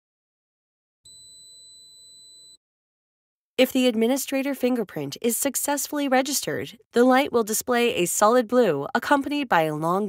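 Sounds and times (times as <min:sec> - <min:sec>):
long high beep: 0:01.1 - 0:02.6.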